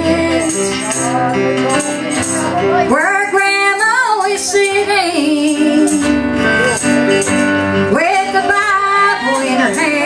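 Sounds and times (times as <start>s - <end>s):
woman singing gospel: 0.0s - 0.9s, 2.9s - 6.2s, 7.9s - 10.0s
instrumental accompaniment: 0.0s - 10.0s.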